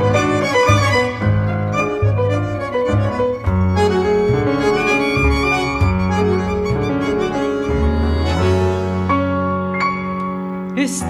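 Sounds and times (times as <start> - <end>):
violin melody: 0.0 - 10.7
tango quartet playing: 0.0 - 11.0.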